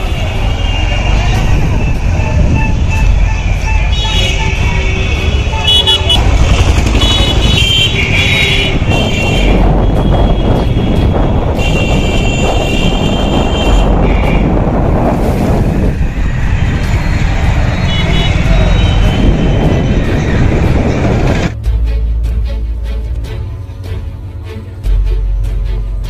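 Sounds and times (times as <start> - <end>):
horn-like high tone: 0.0 - 6.2, 17.6 - 20.1
background music: 0.0 - 14.4, 15.1 - 26.0
street traffic noise: 0.0 - 26.0.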